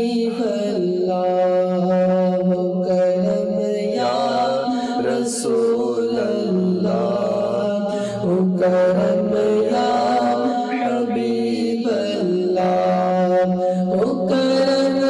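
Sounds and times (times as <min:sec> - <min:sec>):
man chanting devotional song: 0:00.0 - 0:15.0.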